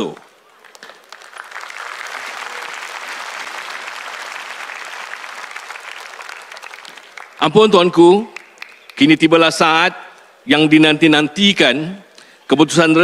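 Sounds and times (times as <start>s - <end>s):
audience applauding: 0.6s - 9.1s.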